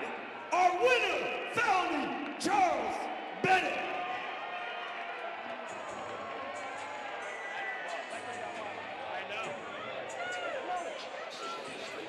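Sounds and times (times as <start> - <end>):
crowd murmur: 0.0 - 0.8, 2.9 - 12.0.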